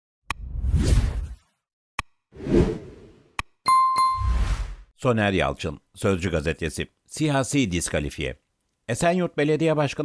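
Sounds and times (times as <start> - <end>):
whoosh: 2.4 - 3.2.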